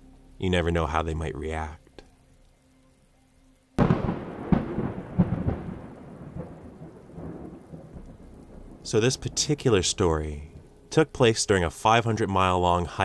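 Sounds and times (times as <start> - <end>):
thunderclap with rolling rumble: 3.8 - 9.6.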